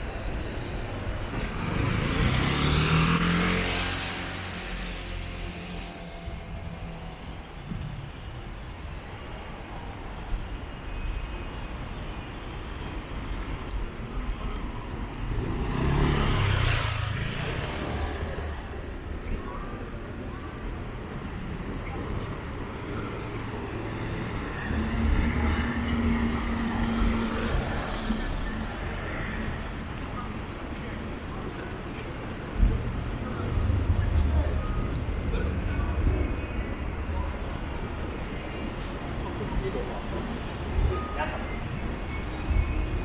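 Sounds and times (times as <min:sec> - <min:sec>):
steady traffic hum: 0:00.0 - 0:43.0
vehicle engine hum passing: 0:01.4 - 0:07.5, 0:14.4 - 0:19.6.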